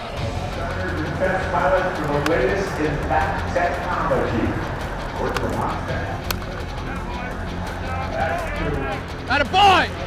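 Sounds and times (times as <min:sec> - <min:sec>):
music playing: 0:00.0 - 0:10.0
man speaking over public address: 0:00.6 - 0:06.2, 0:06.8 - 0:10.0.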